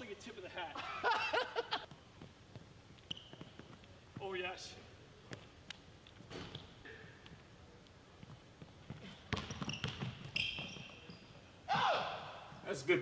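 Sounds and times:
sneakers squeaking: 0:01.8 - 0:04.5, 0:05.1 - 0:12.6
basketball bouncing on wooden floor: 0:08.2 - 0:11.0.

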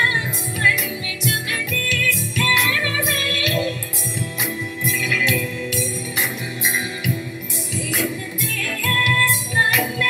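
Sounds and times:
ensemble music with singing: 0:00.0 - 0:10.0.

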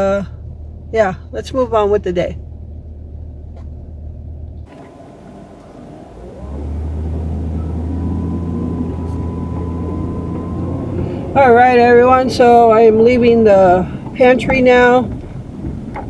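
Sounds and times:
car engine and road rumble: 0:00.0 - 0:16.0
faint high whine: 0:04.7 - 0:13.1.

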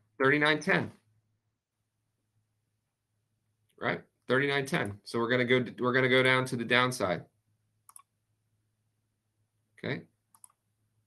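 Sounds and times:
computer mouse clicks: 0:07.8 - 0:08.2, 0:10.3 - 0:10.7.

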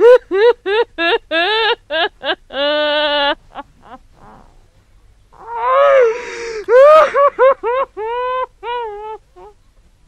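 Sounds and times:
woman weeping and wailing: 0:00.0 - 0:04.1, 0:05.5 - 0:09.2
faint breathing: 0:06.0 - 0:06.8.

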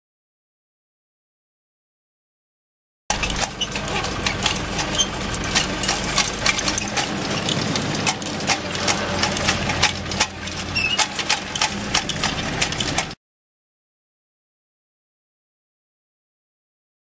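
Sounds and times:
drive chain clicking and rattling: 0:03.1 - 0:13.2.

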